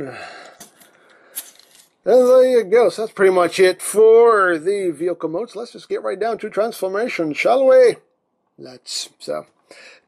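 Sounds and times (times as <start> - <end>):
plastic toy parts handled: 0.5 - 2.0.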